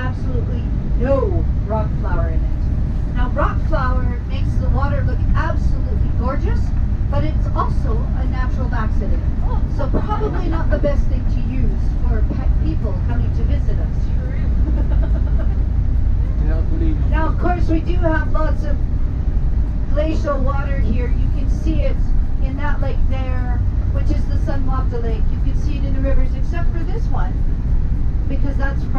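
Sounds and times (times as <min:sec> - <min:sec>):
people talking: 0:00.0 - 0:15.6, 0:16.3 - 0:18.8, 0:19.9 - 0:27.4, 0:28.3 - 0:28.9.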